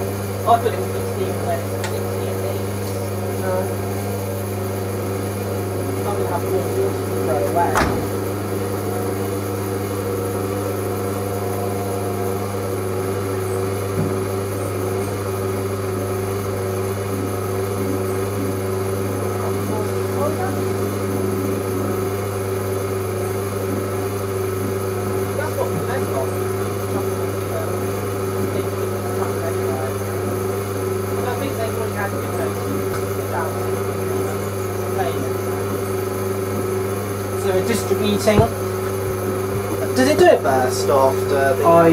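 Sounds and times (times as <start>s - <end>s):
washing machine drum humming: 0.0s - 41.9s.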